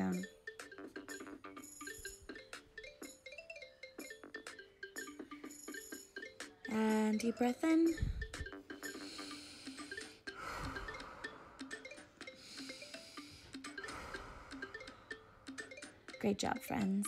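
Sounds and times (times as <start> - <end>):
soft background music: 0.0 - 17.0
deep breaths: 7.9 - 16.2.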